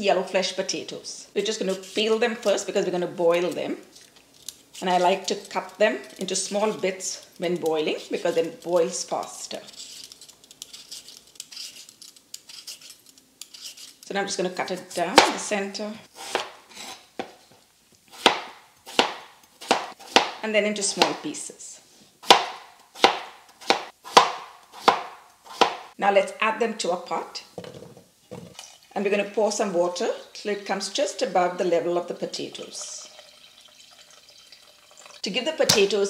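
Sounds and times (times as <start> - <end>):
knife slicing potato: 4.8 - 14.0, 16.1 - 17.3, 18.1 - 21.2, 22.2 - 25.9
water pouring into a saucepan: 32.4 - 35.3.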